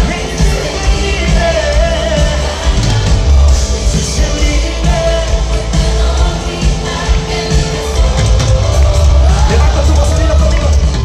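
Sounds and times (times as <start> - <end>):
heavy steady bass: 0.0 - 11.0
live band music: 0.0 - 11.0
man singing: 0.0 - 11.0.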